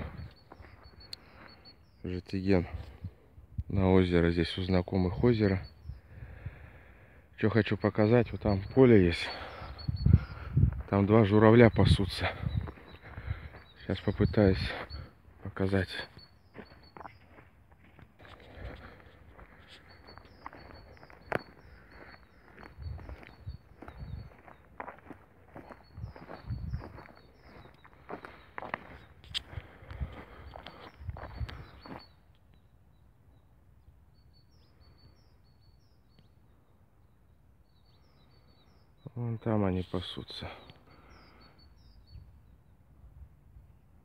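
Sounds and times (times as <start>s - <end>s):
footsteps on dirt and grass: 0.0s - 1.6s, 9.5s - 32.1s
faint high bird chirps: 0.0s - 43.0s.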